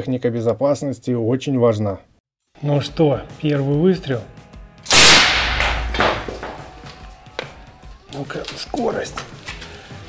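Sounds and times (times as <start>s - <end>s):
faint background music: 0.0s - 10.0s
sharp crack of impact on panel: 4.9s - 7.0s.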